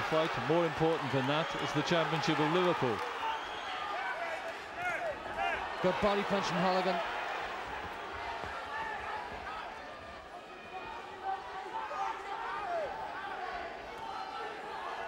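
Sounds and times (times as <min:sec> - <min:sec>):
crowd shouting: 0:00.0 - 0:15.0.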